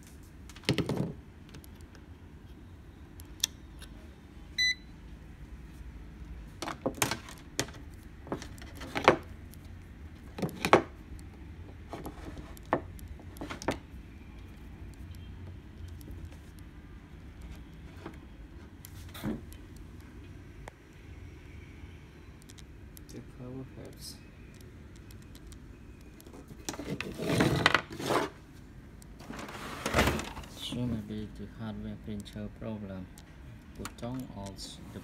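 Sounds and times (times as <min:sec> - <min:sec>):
meter short beep: 0:04.6 - 0:04.9.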